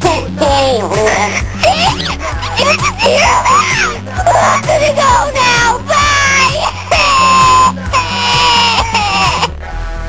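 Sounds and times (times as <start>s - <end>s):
girl fake crying: 0.9s - 9.6s.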